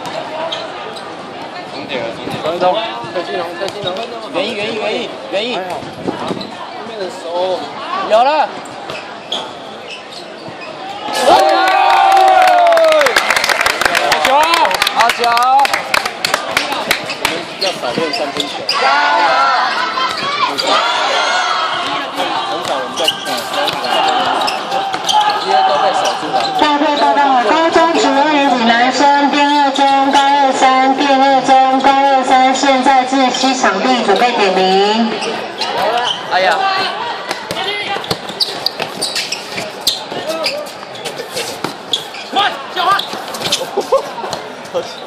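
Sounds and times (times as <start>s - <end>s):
people chattering: 0.0s - 45.0s
voices shouting: 18.1s - 28.6s
players' movement: 33.2s - 45.0s
basketball bouncing on hard court: 37.3s - 39.0s.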